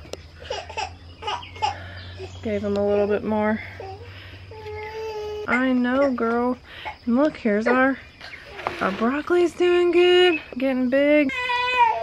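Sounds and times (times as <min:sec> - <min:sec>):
infant babbling and giggling: 0:03.7 - 0:06.1.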